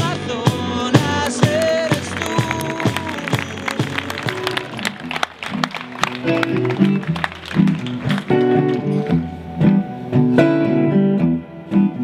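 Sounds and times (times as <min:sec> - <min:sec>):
rock band music: 0:00.0 - 0:12.0.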